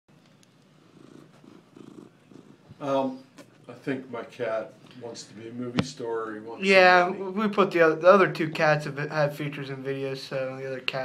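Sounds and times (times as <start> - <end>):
cat purring: 0.6 - 3.2.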